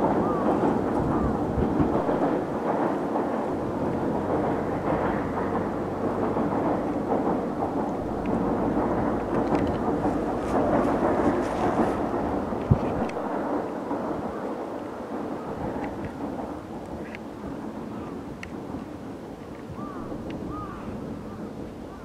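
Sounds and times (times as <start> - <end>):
train rumbling on rails: 0.0 - 22.0.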